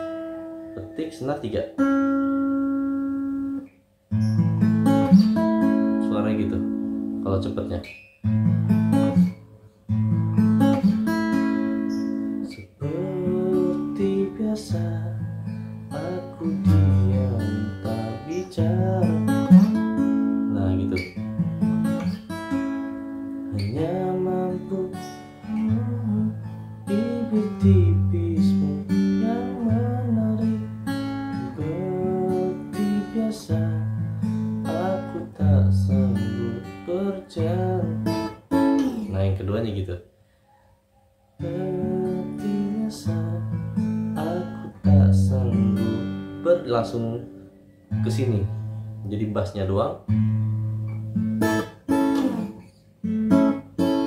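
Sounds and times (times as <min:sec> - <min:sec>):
acoustic guitar fingerpicked: 0:00.0 - 0:39.9, 0:41.4 - 0:54.0.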